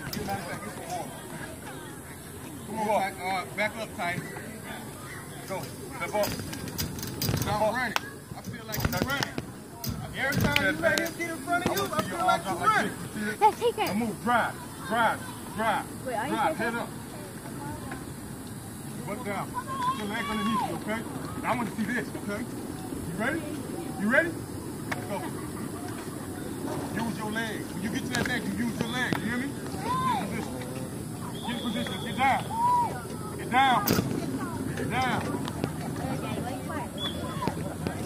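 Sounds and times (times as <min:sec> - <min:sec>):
outdoor background hiss: 0:00.0 - 0:38.0.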